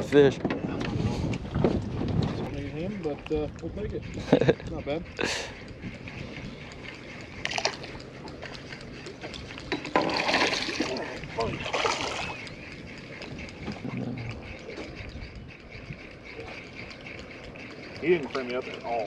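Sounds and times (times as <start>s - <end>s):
water splashing against boat hull: 9.7s - 12.4s.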